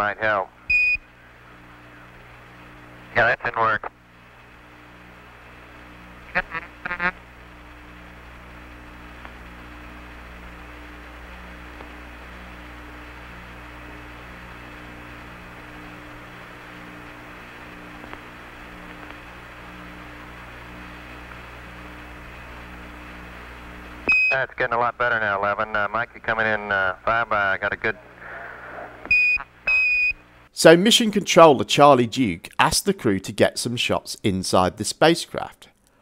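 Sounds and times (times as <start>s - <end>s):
radio hiss and hum: 0.0s - 30.8s
warbling radio blips: 6.3s - 7.2s.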